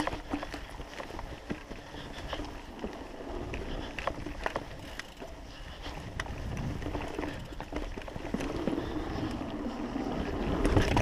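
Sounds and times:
bike clicks and rattles: 0.0s - 11.0s
bike tyre rumble on dirt: 0.0s - 11.0s
wind buffeting microphone: 2.1s - 11.0s.

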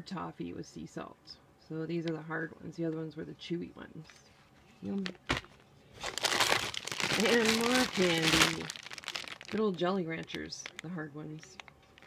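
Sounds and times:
plastic bag rustling: 4.8s - 12.0s.

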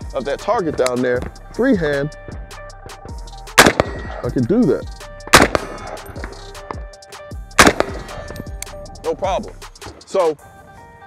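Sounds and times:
rifle shot: 3.6s - 4.3s, 5.3s - 6.6s, 7.6s - 8.5s.

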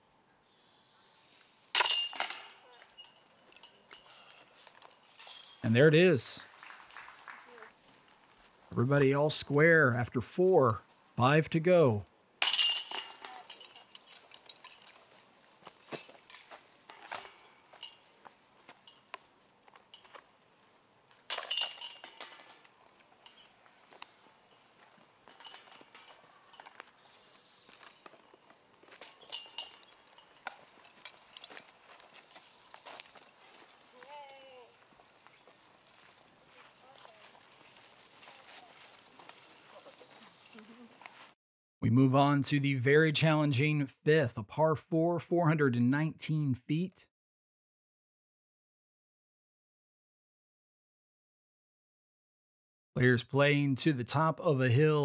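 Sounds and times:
discs striking metal chains: 1.8s - 4.3s, 12.4s - 16.2s, 16.9s - 20.2s, 21.3s - 23.5s, 24.5s - 28.3s, 28.9s - 32.2s.

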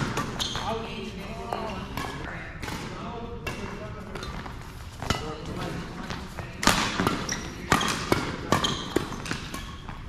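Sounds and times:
badminton racket hits: 6.6s - 10.0s.

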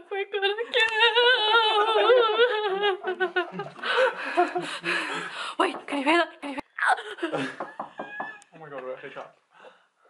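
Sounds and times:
woman laughing hysterically: 0.7s - 4.8s, 7.1s - 8.4s.

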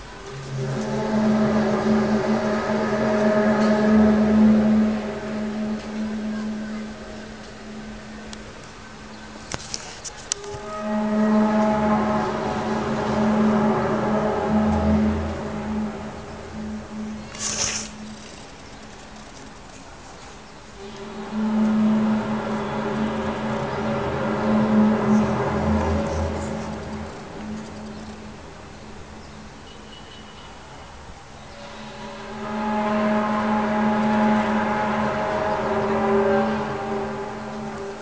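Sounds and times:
loud low drone: 0.0s - 9.6s, 10.3s - 19.7s, 20.6s - 29.6s, 31.6s - 38.0s.

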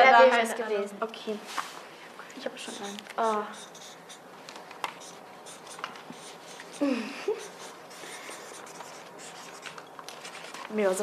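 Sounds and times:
pen ticks on paper: 2.6s - 4.2s, 4.9s - 6.8s
pens scratching on paper: 2.6s - 4.2s, 4.8s - 11.0s.

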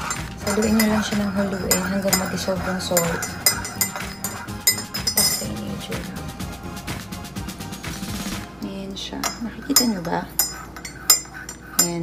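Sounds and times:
spoon clinking in mug: 0.0s - 5.6s, 9.2s - 12.0s.

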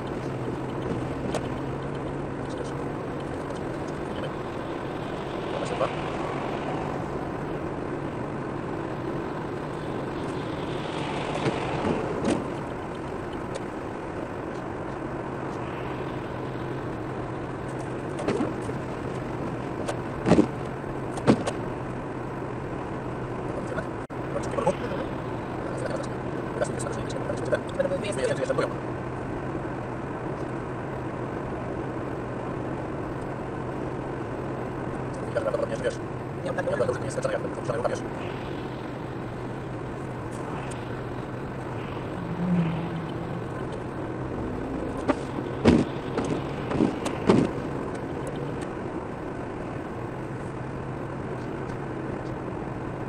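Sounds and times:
low engine hum: 0.0s - 53.0s.

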